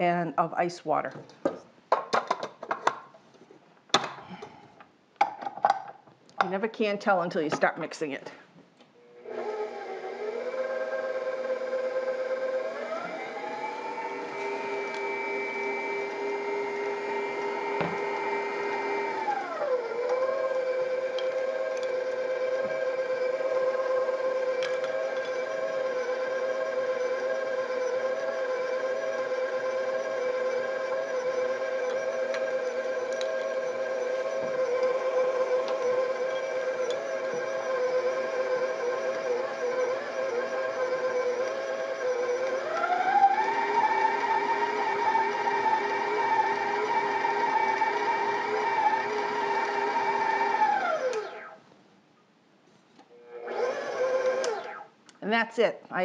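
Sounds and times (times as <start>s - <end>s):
stand mixer motor whining: 9.2s - 51.6s, 53.2s - 54.9s.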